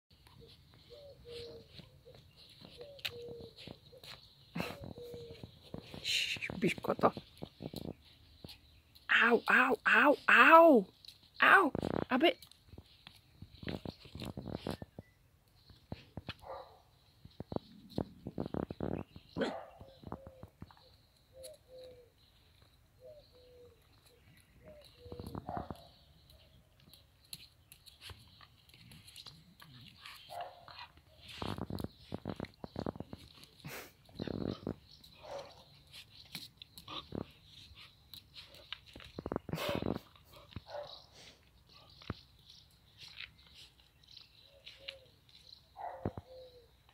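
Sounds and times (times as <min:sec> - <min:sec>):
claws clicking on paving: 0:00.2 - 0:09.5, 0:10.9 - 0:46.9
dog yelping bark: 0:19.4 - 0:19.8, 0:45.8 - 0:46.2
dogs play growling: 0:28.4 - 0:40.6.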